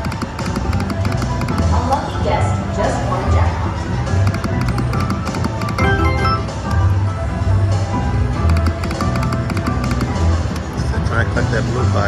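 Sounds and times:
sharp clicks: 0.0s - 1.7s, 4.2s - 5.8s, 8.4s - 10.7s
slot machine music and effects: 4.2s - 7.2s.

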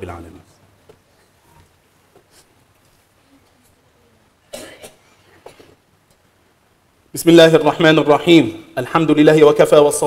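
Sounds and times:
person coughing: 4.5s - 5.8s.

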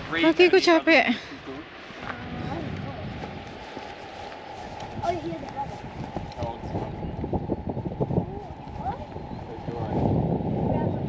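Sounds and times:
wind rumbling on microphone: 0.0s - 11.0s
footsteps on grassy stony ground: 0.3s - 10.9s.

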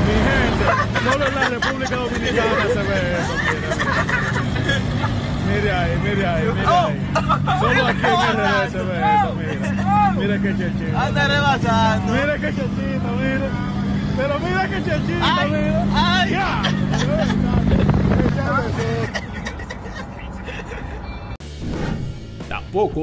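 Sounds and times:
vehicle engine droning: 0.0s - 23.0s
voices exclaiming excitedly: 0.1s - 13.5s, 14.2s - 19.2s.

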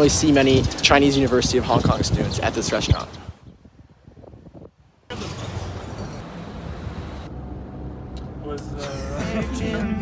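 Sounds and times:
car engine and road noise: 0.0s - 10.0s
faint street sound: 0.0s - 10.0s.

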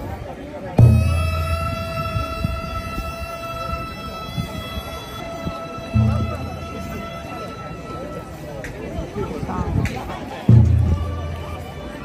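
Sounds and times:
crowd murmur: 0.0s - 12.0s
deep drum beat: 0.8s - 2.2s, 5.9s - 7.1s, 10.5s - 11.7s
long held musical note: 5.0s - 8.4s.

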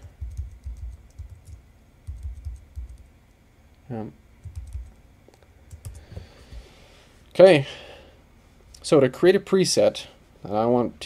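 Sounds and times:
computer clicks and thuds: 0.0s - 3.1s, 4.4s - 5.0s, 5.7s - 6.7s.

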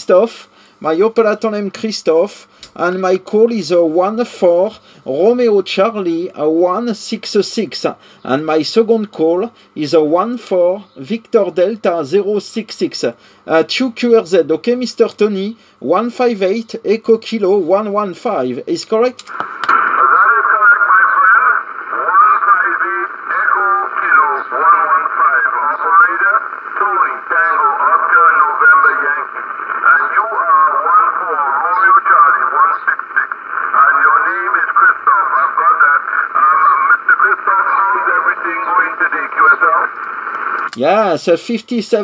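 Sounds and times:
person talking over shortwave radio: 19.2s - 40.9s.

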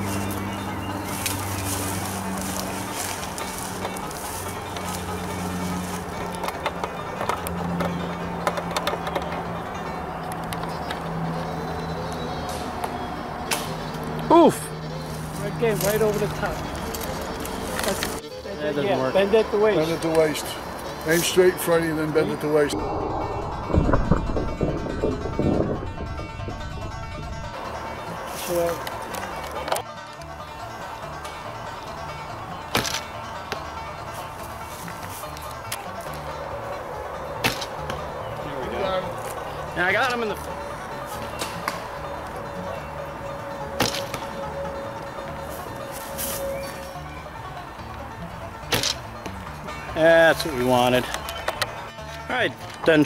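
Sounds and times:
background music: 0.0s - 53.0s
heavy thump: 22.9s - 27.6s
voices: 35.6s - 48.3s.

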